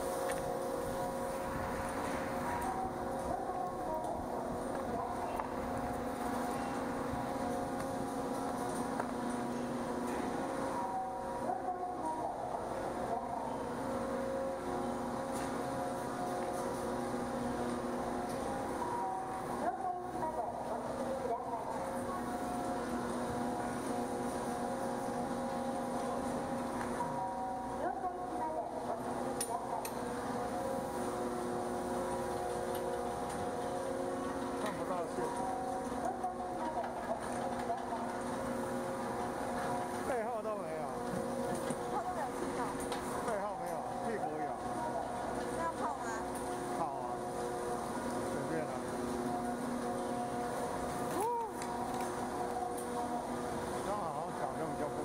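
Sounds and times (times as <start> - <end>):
chairlift machinery humming: 0.0 - 55.0.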